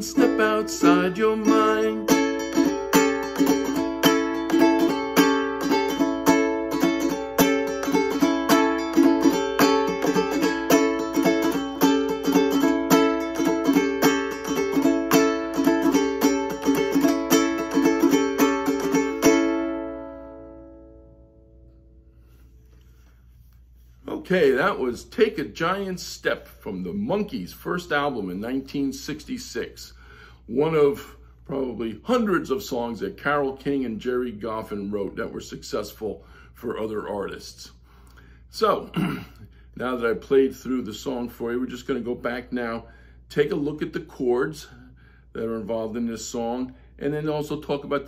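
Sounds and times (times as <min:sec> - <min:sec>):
ukulele strumming: 0:00.0 - 0:21.7.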